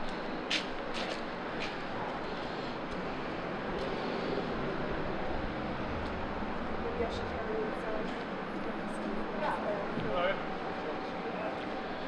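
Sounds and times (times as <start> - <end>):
city background hum: 0.0 - 12.0.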